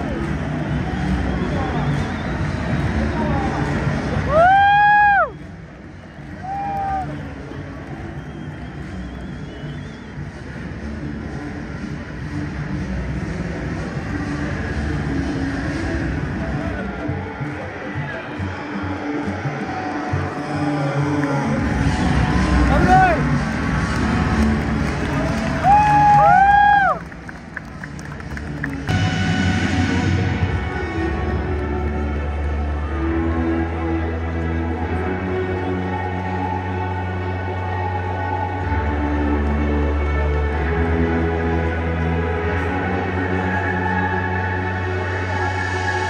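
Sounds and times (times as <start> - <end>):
spectators chattering: 0.0 - 4.4, 6.9 - 25.6.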